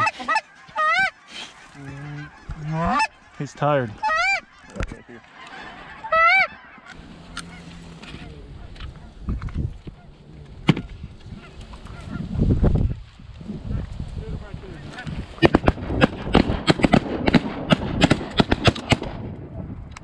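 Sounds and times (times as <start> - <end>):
geese honking: 0.0 - 12.4, 14.7 - 15.7
low rumble: 6.9 - 20.0.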